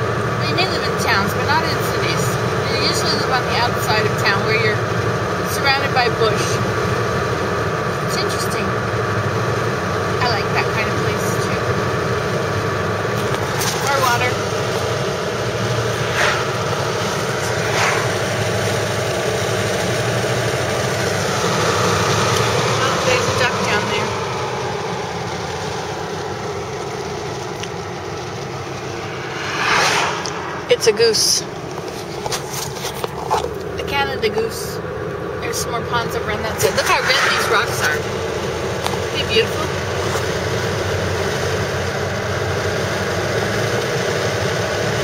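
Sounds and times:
car engine from inside cabin: 0:00.0 - 0:29.5, 0:30.2 - 0:45.0
road noise: 0:00.0 - 0:45.0.

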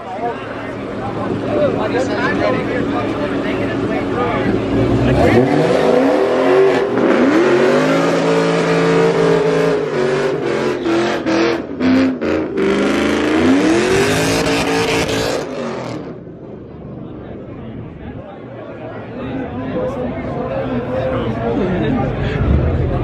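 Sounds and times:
car engine revving hard: 0:04.6 - 0:16.2.

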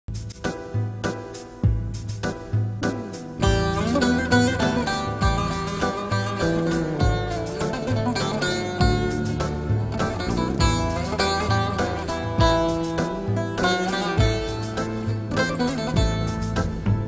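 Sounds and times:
long-necked lute strummed: 0:02.8 - 0:17.0.

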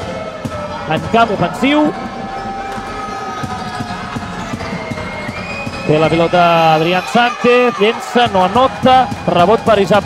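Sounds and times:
crowd and hall noise: 0:00.0 - 0:10.0.

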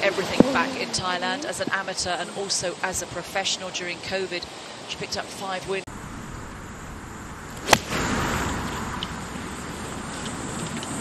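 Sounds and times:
steady rushing noise: 0:05.7 - 0:11.0
golf club striking ball: 0:07.6 - 0:09.1.

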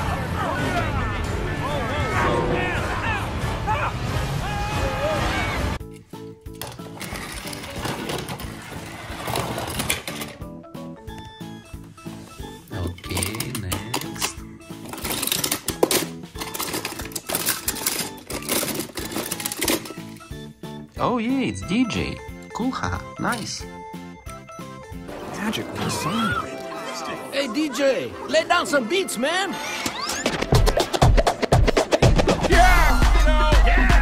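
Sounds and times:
background music: 0:00.0 - 0:34.0
film soundtrack music: 0:01.3 - 0:34.0
toy cars clattering in plastic bin: 0:06.6 - 0:10.4, 0:12.8 - 0:20.3.

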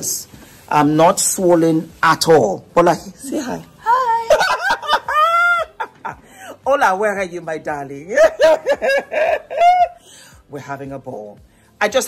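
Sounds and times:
laughter: 0:04.3 - 0:06.3, 0:08.2 - 0:10.0.

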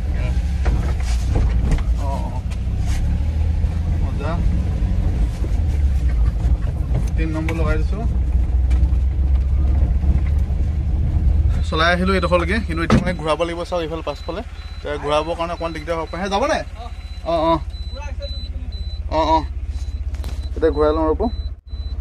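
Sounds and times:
truck engine rumbling inside cab: 0:00.0 - 0:22.0.

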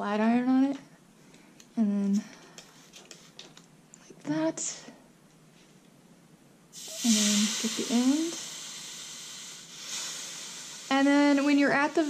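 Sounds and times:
steam hissing under iron: 0:06.7 - 0:12.0.

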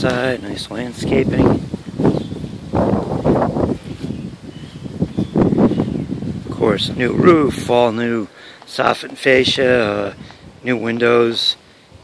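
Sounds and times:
wind buffeting microphone: 0:00.0 - 0:08.3, 0:09.2 - 0:12.0.

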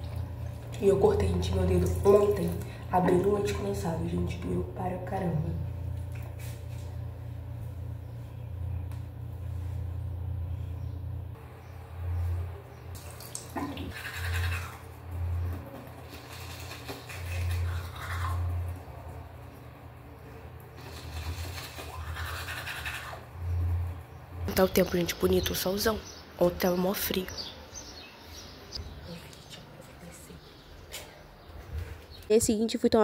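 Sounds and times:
steady low hum: 0:00.0 - 0:33.0
toothbrush scrubbing teeth: 0:13.5 - 0:14.9, 0:15.8 - 0:18.8, 0:20.8 - 0:23.3.

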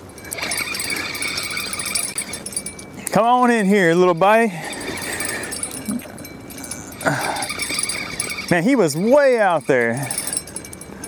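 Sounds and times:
metallic jingling of rod bell: 0:00.0 - 0:11.0
fishing reel cranking: 0:00.2 - 0:03.7, 0:04.4 - 0:11.0
short whine-like vocal sound: 0:05.7 - 0:07.6.

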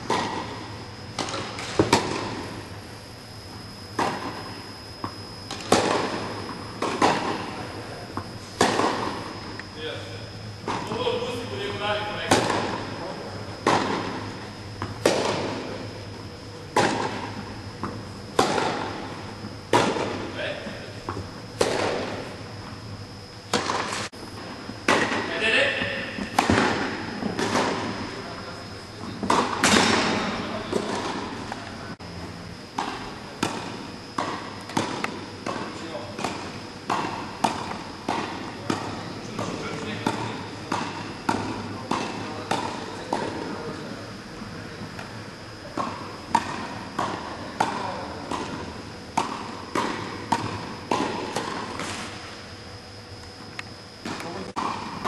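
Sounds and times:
tennis rackets hitting ball: 0:00.0 - 0:02.6, 0:03.9 - 0:09.4, 0:12.2 - 0:13.0, 0:13.6 - 0:15.9, 0:16.7 - 0:20.2, 0:21.0 - 0:22.4, 0:23.5 - 0:24.1, 0:24.8 - 0:28.0, 0:29.2 - 0:31.6, 0:32.7 - 0:43.5, 0:45.7 - 0:52.4, 0:54.0 - 0:55.0.

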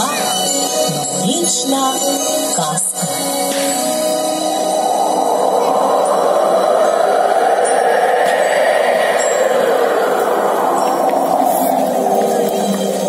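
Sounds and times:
wind-like whooshing: 0:03.8 - 0:13.0.

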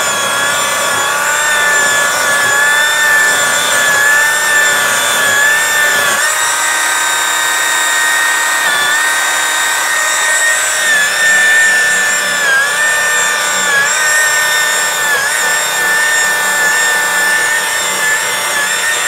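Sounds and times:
polisher whining: 0:00.0 - 0:19.0.

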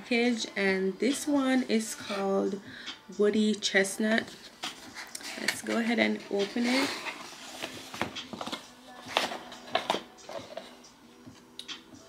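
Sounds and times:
cardboard and paper packaging handled: 0:04.3 - 0:10.7.

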